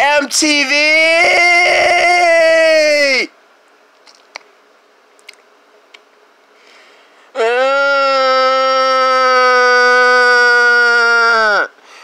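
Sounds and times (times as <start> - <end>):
person holding a vocal note: 7.3 - 11.7.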